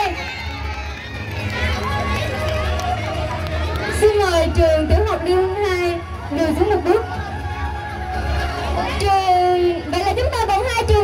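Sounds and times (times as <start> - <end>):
woman speaking over loudspeaker: 3.9 - 7.1, 9.0 - 11.0.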